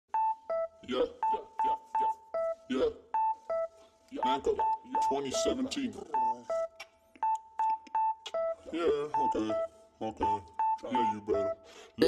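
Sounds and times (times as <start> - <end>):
clipped electronic keyboard notes: 0.1 - 12.0
clicky percussion ticks: 3.5 - 8.5.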